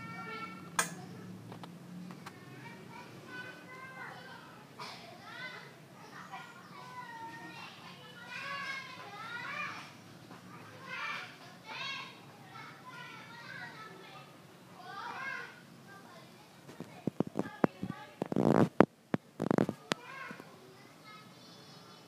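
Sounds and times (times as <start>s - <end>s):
children talking and calling out: 0.0s - 18.6s, 19.2s - 22.0s.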